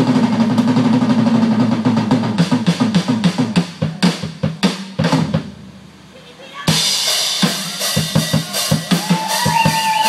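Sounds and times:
hissing cymbals: 0:06.7 - 0:10.0
rock band holding low note: 0:06.7 - 0:10.0.

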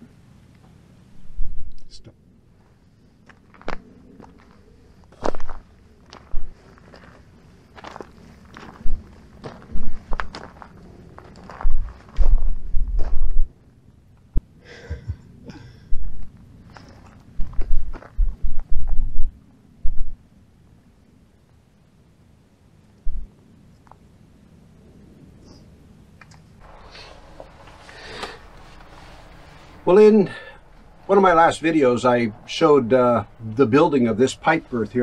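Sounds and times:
footsteps crunching on rocky ground: 0:02.6 - 0:13.4, 0:16.2 - 0:18.7
deep thumps: 0:11.6 - 0:13.5, 0:17.4 - 0:20.2, 0:23.0 - 0:23.3.

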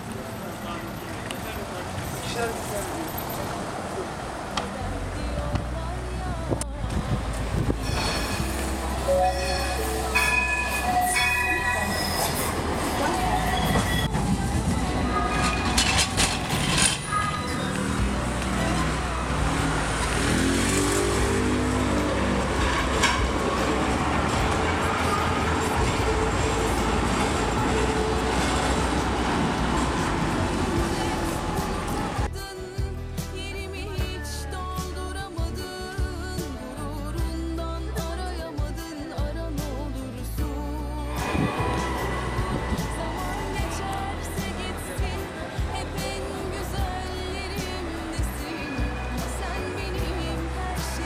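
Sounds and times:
tram rumbling on rails: 0:00.0 - 0:32.4, 0:40.3 - 0:51.0
voices: 0:00.0 - 0:32.4, 0:33.5 - 0:51.0
street noise: 0:00.0 - 0:51.0.

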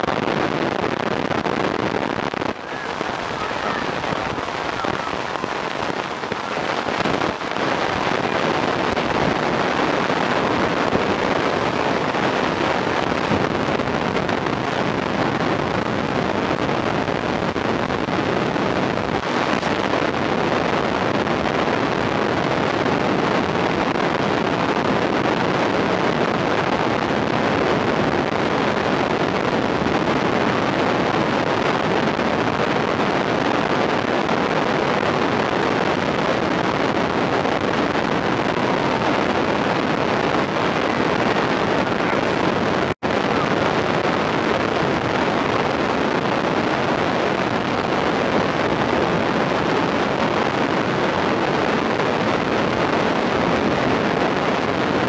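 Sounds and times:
steady rushing noise: 0:00.0 - 0:55.0.

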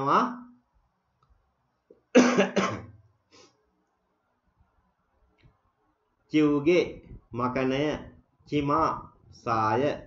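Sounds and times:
person coughing: 0:02.1 - 0:03.0.

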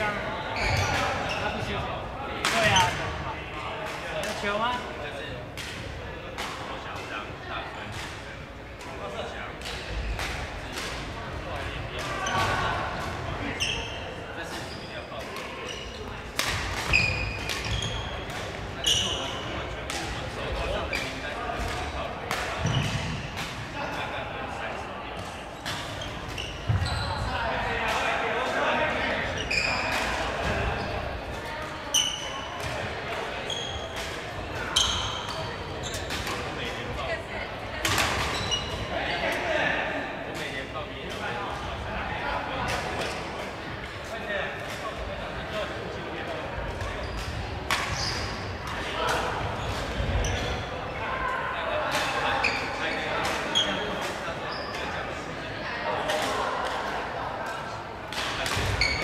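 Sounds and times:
shoes squeaking on floor: 0:00.5 - 0:01.7, 0:13.4 - 0:16.1, 0:16.8 - 0:19.4, 0:25.6 - 0:27.3, 0:29.3 - 0:30.0, 0:31.9 - 0:32.5, 0:33.4 - 0:34.0, 0:34.7 - 0:36.1, 0:38.3 - 0:38.9, 0:46.8 - 0:48.5, 0:49.6 - 0:50.7, 0:52.4 - 0:53.8, 0:54.4 - 0:54.8, 0:58.7 - 0:59.0.

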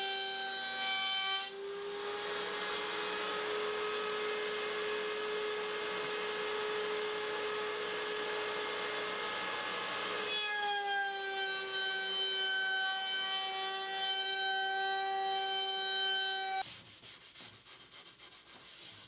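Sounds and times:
wood router whining: 0:00.0 - 0:16.6.

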